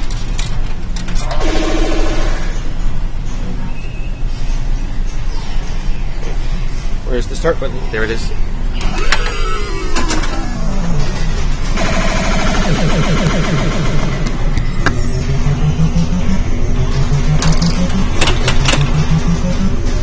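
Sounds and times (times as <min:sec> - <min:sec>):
arcade machines din: 0:00.0 - 0:03.2, 0:08.3 - 0:20.0
falling electronic tone: 0:08.8 - 0:16.6.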